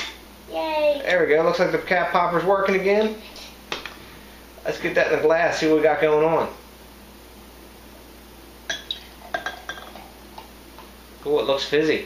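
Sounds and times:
glass bottle clinking against glass: 8.7s - 10.0s.

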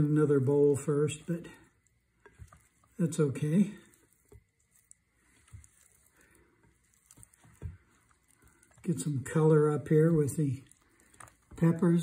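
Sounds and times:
wet squishes of food tossing: 0.0s - 12.0s.

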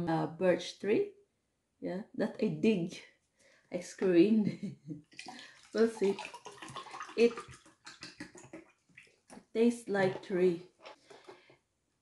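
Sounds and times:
liquid pouring into a glass: 5.2s - 9.2s.

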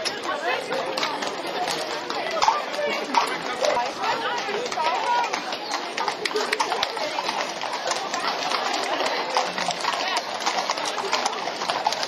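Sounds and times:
horse hooves on wet pavement: 0.0s - 12.0s
onlookers talking: 0.0s - 12.0s.

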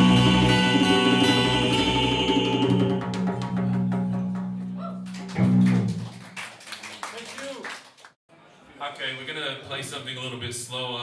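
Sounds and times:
acoustic band playing: 0.0s - 6.2s.

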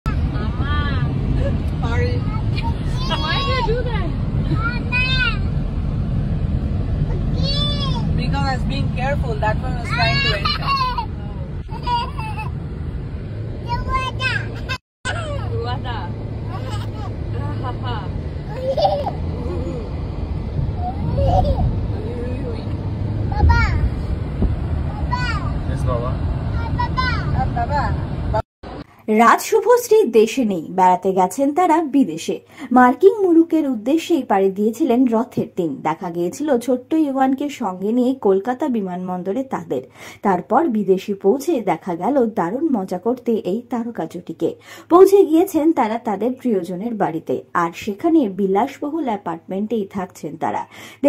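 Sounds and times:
car cabin road and engine rumble: 0.1s - 28.8s.

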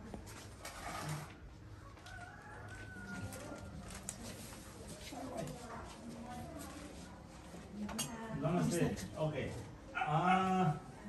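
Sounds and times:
soft rustling: 0.0s - 7.9s.

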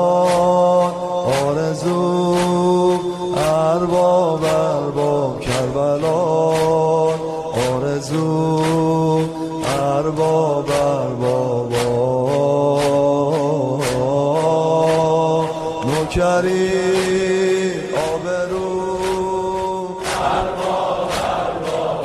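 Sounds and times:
sharp beat: 0.0s - 22.0s.

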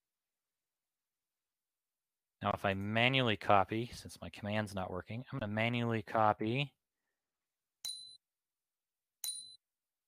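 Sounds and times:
computer electronic dings: 7.8s - 8.2s, 9.2s - 9.6s.

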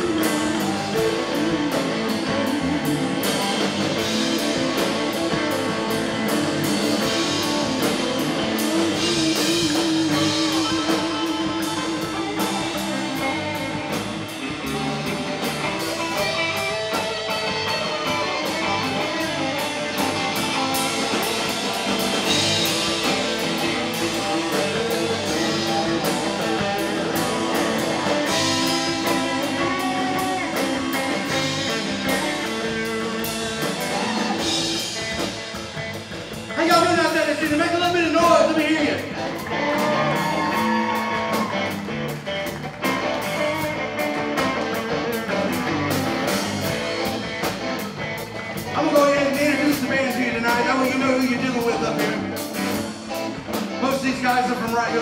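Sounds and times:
bass guitar: 0.0s - 55.0s
drum kit with cymbals: 0.0s - 55.0s
electric guitar lead: 0.0s - 55.0s.

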